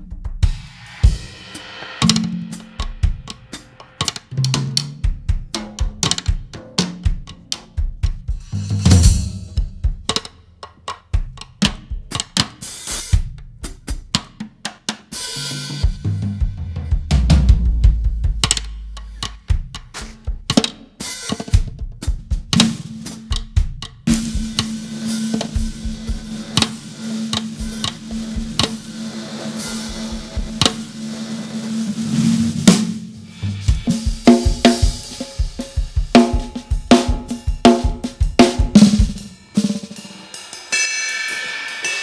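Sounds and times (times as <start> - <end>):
drum stick strokes: 0.9 - 12.6, 17.8 - 21.7, 22.5 - 42.0
sharp accented drum hits: 1.6 - 4.3, 22.6 - 35.2
deeper drum hits: 7.1 - 10.2, 16.0 - 20.5, 23.4 - 31.2.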